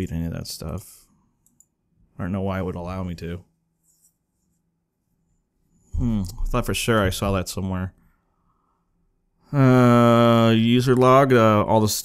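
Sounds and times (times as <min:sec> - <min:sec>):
faint mouse click: 0:01.4 - 0:01.8.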